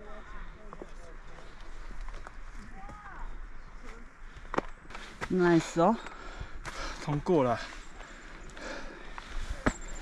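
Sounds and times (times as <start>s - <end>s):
footsteps on rock: 3.8s - 10.0s.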